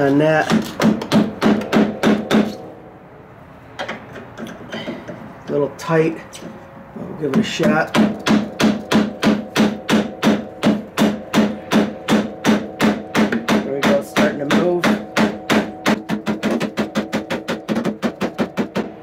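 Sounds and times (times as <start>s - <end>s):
rubber mallet striking metal: 7.4s - 19.0s.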